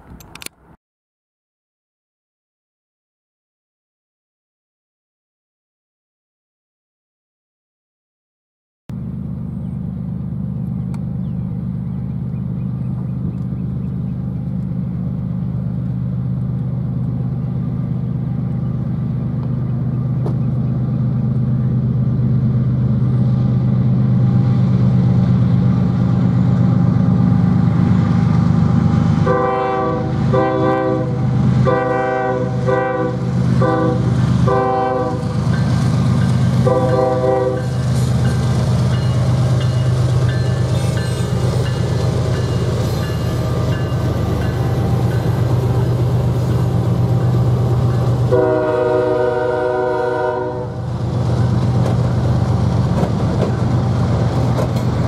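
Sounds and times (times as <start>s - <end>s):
diesel locomotive engines droning: 8.9s - 55.0s
train air horn blasts: 29.2s - 35.3s, 36.6s - 37.8s, 48.2s - 50.8s.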